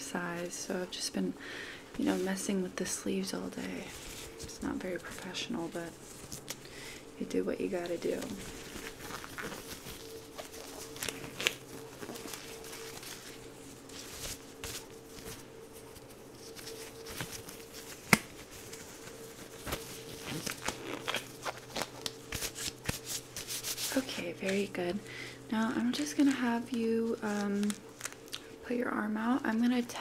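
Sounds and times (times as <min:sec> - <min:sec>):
steady low hum: 0:00.0 - 0:30.0
rubber gloves crinkling and snapping: 0:03.5 - 0:24.8, 0:25.8 - 0:28.6.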